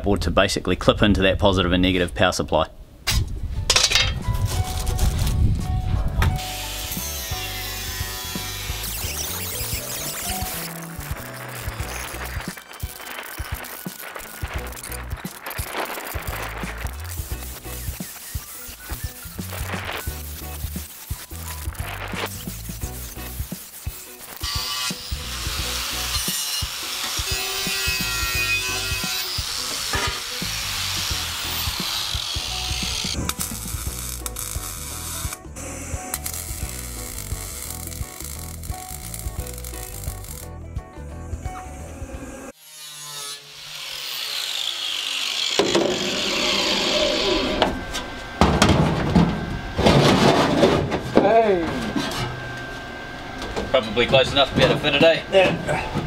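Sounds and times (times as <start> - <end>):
welding: 4.4 - 5.4, 6.4 - 35.4, 36.0 - 40.5
circular saw cutting metal: 6.4 - 15.0, 17.1 - 40.5, 41.4 - 48.4.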